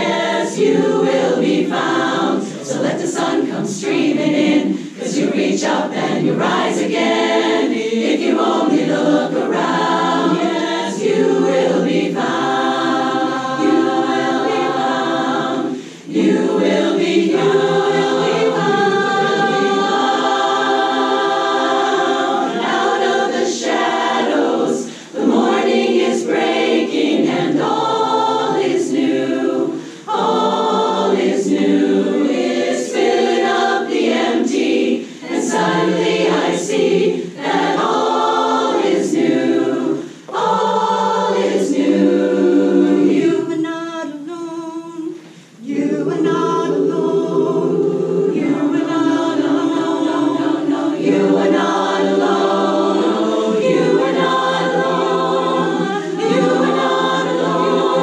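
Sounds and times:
women's chorus singing: 0:00.0 - 0:58.0.

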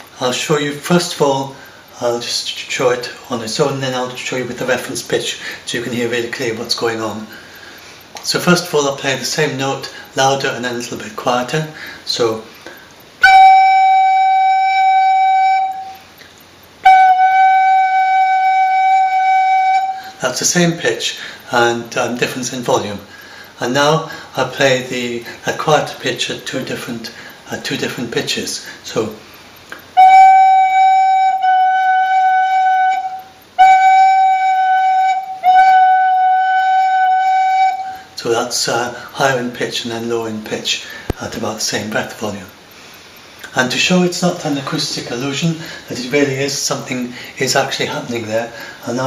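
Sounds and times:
recorder holding one note: 0:13.2 - 0:16.0
recorder holding note: 0:13.2 - 0:20.2, 0:29.9 - 0:38.2.

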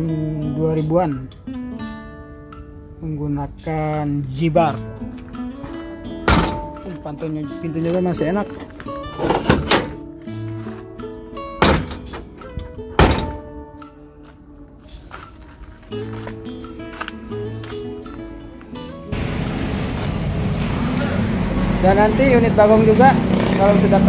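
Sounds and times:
plucked-string music: 0:00.0 - 0:24.0
car door shutting: 0:06.2 - 0:06.8, 0:09.1 - 0:10.1, 0:11.6 - 0:13.5
steady rushing noise: 0:19.1 - 0:23.3.

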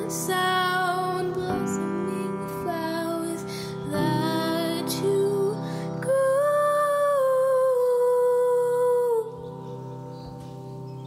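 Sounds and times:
woman singing a long note: 0:00.0 - 0:09.6
soft accompaniment: 0:00.0 - 0:11.0.

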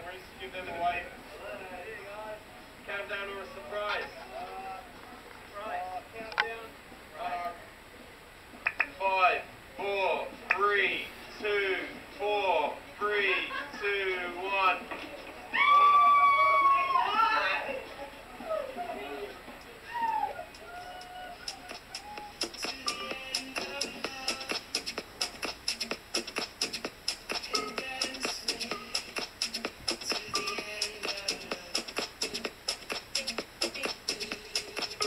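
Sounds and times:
music with fast steady beat: 0:21.4 - 0:35.0.

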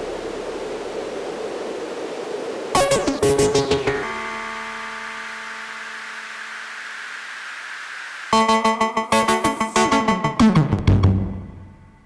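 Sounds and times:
steady hiss: 0:00.0 - 0:09.9
synthesizer held tone: 0:08.3 - 0:12.0.

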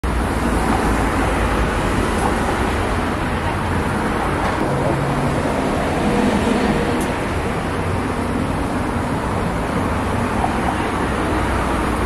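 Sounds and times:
rumble of passing vehicles: 0:00.0 - 0:12.0.

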